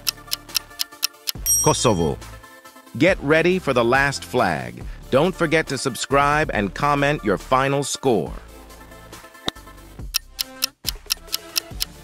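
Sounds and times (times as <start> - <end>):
countdown timer ticking rapidly: 0.0 - 2.2, 10.0 - 12.0
background music: 0.0 - 12.0.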